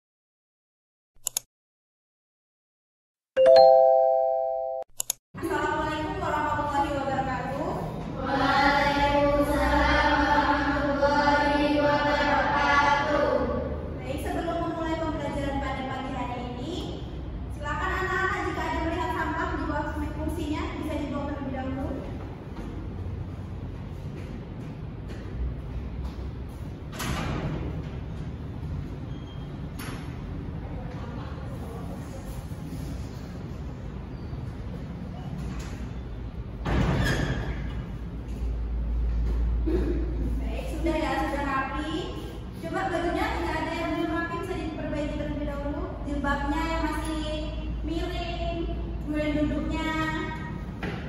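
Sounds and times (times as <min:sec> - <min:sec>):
mouse double click: 0:01.2 - 0:01.4, 0:05.0 - 0:05.2.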